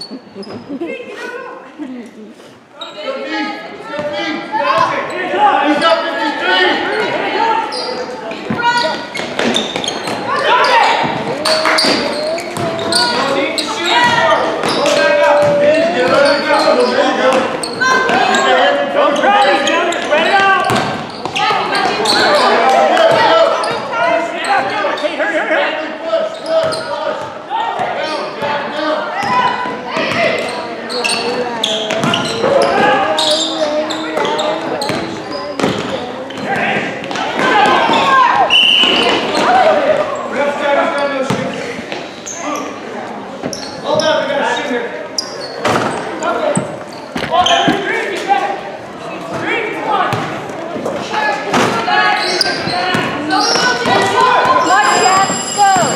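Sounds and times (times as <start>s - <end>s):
many voices shouting and talking: 0.0s - 55.9s.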